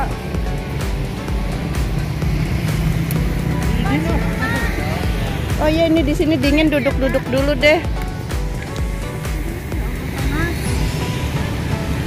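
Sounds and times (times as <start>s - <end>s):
background music with low bass: 0.0s - 12.0s.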